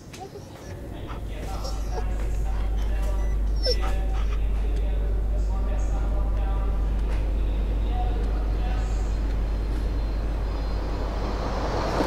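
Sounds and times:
dog whimpering: 0.0s - 4.8s
steady low hum: 0.0s - 12.0s.

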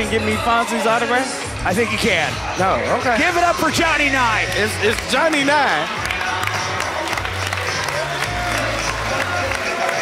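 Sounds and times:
entrance music over speakers: 0.0s - 10.0s
crowd applauding and cheering: 2.4s - 10.0s.

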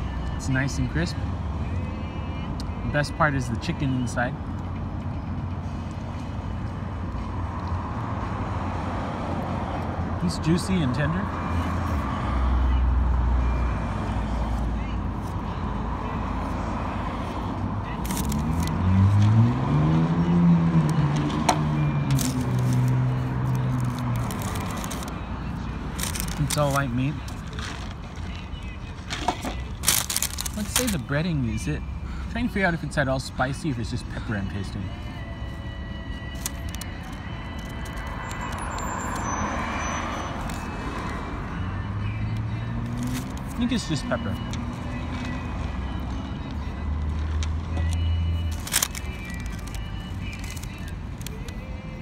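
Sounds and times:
road traffic rumble: 0.0s - 52.0s
vehicle passing: 11.2s - 30.6s, 35.2s - 52.0s
vehicle accelerating past: 18.4s - 24.2s.

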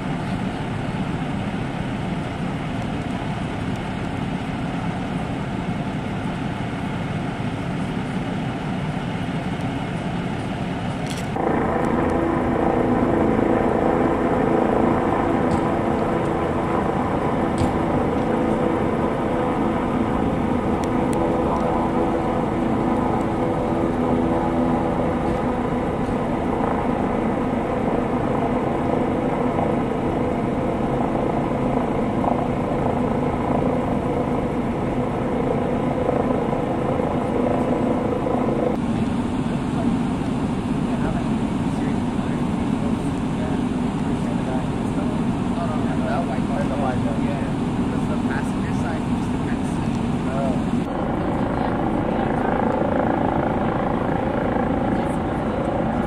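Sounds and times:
large vehicle engine idling: 0.0s - 56.0s.

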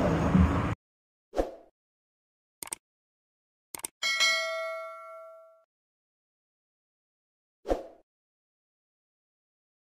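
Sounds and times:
metallic bell chime: 4.0s - 5.7s.

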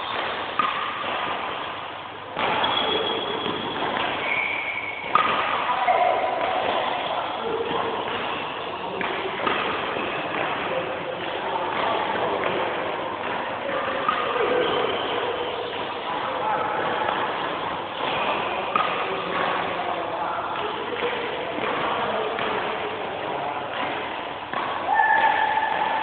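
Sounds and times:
hubbub of voices: 5.1s - 26.0s.

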